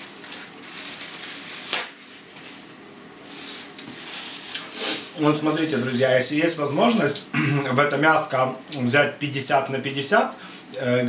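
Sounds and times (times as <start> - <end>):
paper rustling: 0.0 - 6.0
paper towel tearing: 0.0 - 6.0.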